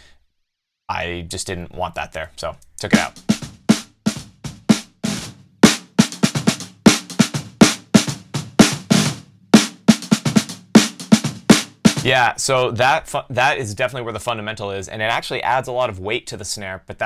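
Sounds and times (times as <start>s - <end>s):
snare drum strokes and ruffs: 2.9s - 12.3s.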